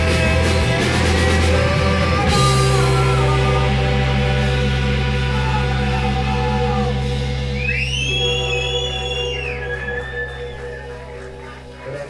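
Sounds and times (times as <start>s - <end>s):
rock band droning chord: 0.0s - 12.0s.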